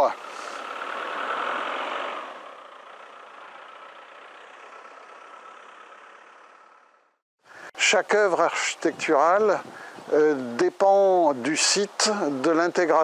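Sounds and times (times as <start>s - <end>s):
motor vehicle passing: 0.0s - 7.2s.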